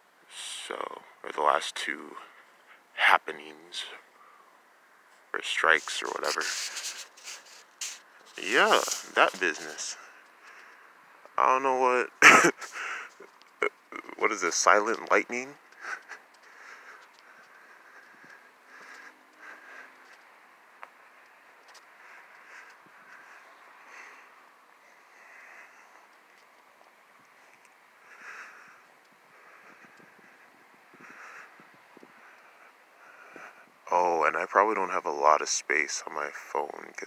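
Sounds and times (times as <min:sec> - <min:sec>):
low steady hiss: 0:00.0 - 0:37.0
soft breathing: 0:04.0 - 0:11.3, 0:12.6 - 0:13.4, 0:15.6 - 0:33.8.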